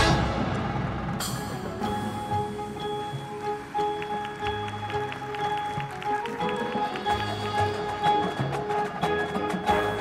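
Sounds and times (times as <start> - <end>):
marching band wind instruments: 0.0 - 10.0.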